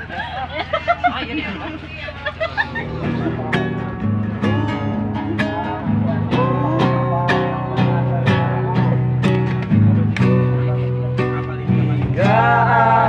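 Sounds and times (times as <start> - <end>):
classical guitar strumming: 2.6 - 13.0.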